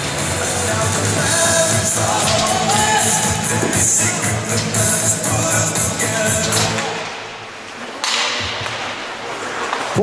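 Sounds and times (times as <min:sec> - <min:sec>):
arena music over speakers: 0:00.0 - 0:07.1
skates and sticks scraping ice: 0:00.0 - 0:07.2, 0:07.8 - 0:10.0.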